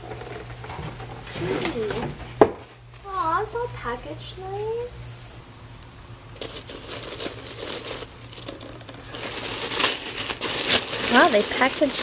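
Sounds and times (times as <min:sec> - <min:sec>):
tissue paper crinkling: 0:06.4 - 0:12.0.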